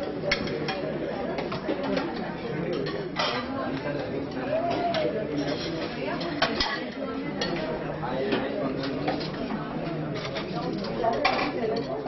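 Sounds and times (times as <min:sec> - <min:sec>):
serving spoons clinking on plates: 0:00.0 - 0:03.8, 0:04.6 - 0:09.4, 0:10.1 - 0:12.0
crowd chatter: 0:00.0 - 0:12.0.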